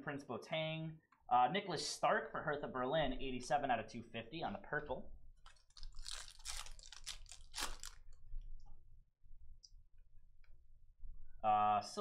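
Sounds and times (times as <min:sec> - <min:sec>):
foil wrapper crinkling: 0:05.4 - 0:08.2.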